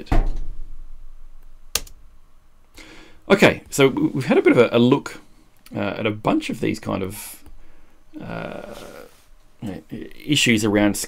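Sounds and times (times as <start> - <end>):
short breath: 2.8 - 3.2, 7.5 - 9.2.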